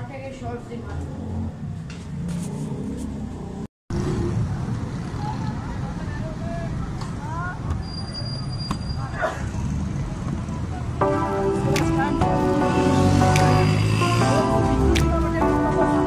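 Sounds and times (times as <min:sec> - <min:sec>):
street traffic rumble: 0:00.0 - 0:16.0.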